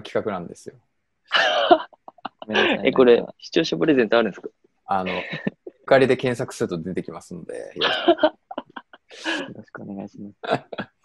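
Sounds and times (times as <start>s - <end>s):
man speaking: 0.0s - 0.8s, 2.5s - 8.0s, 9.2s - 10.8s
man laughing breathily: 7.8s - 9.6s.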